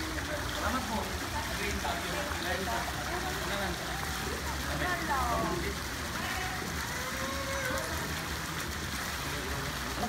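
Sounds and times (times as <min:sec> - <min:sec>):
faint voices: 0:00.0 - 0:10.0
pool water sloshing: 0:00.0 - 0:10.0.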